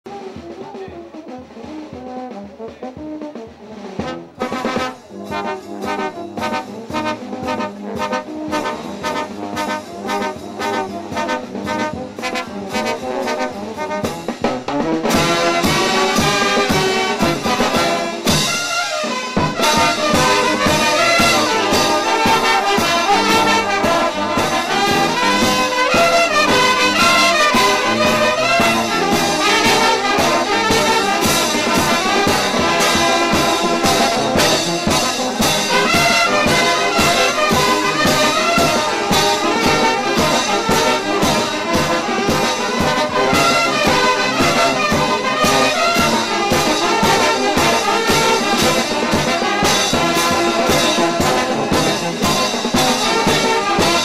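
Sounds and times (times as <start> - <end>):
brass band playing: 0.1 - 54.0
bass drum beat: 19.4 - 54.0.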